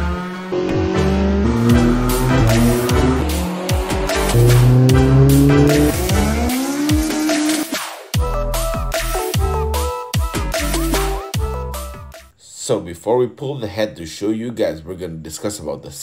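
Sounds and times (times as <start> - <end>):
car engine revving hard: 0.0 - 7.7
music with heavy beat: 1.6 - 12.2.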